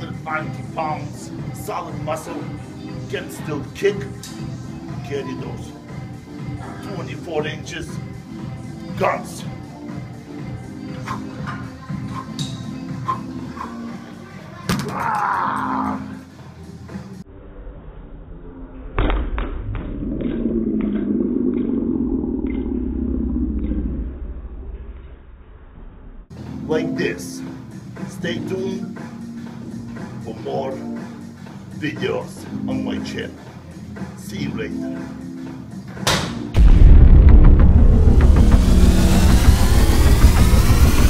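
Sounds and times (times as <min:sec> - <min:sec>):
low rumble: 0:17.3 - 0:26.3, 0:36.6 - 0:41.0.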